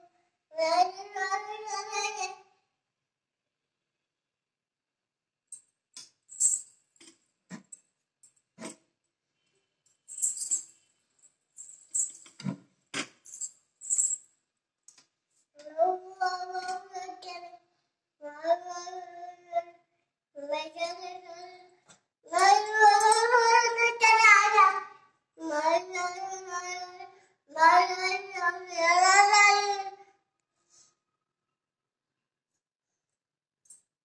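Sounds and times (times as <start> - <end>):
child singing: 0.6 - 2.4, 15.6 - 17.6, 18.2 - 19.7, 20.4 - 21.7, 22.3 - 30.0
metallic clinks and jingles: 6.3 - 8.7, 9.8 - 12.5, 13.2 - 14.3.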